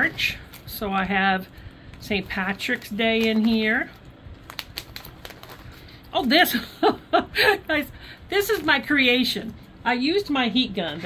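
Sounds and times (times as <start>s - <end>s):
plastic pages rustling and crinkling: 0.0s - 6.6s, 8.3s - 9.2s.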